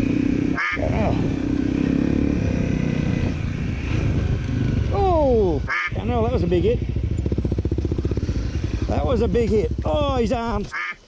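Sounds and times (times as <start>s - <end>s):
dirt bike engine running: 0.0s - 10.8s.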